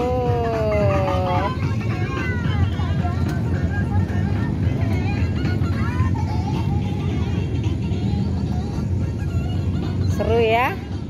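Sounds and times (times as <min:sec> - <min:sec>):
scattered voices: 0:00.0 - 0:10.8
music: 0:00.0 - 0:11.0
steady low rumble: 0:00.0 - 0:11.0.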